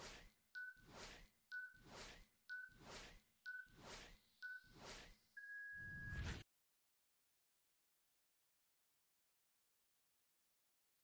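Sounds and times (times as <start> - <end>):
countdown timer beeps: 0.6 - 6.1.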